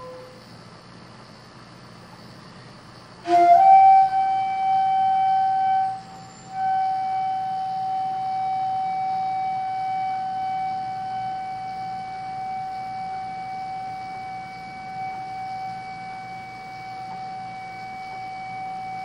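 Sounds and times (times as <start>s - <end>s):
bamboo flute long note: 0.0s - 0.4s, 3.2s - 19.0s.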